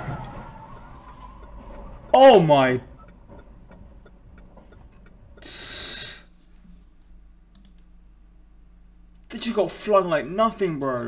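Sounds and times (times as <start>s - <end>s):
computer mouse clicks: 7.5s - 7.9s.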